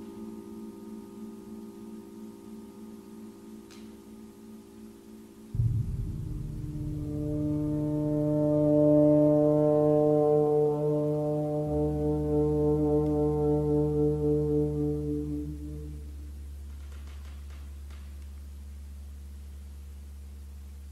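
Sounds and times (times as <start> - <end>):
steady low drone: 5.5 - 16.7
trombone long low note: 5.6 - 16.4.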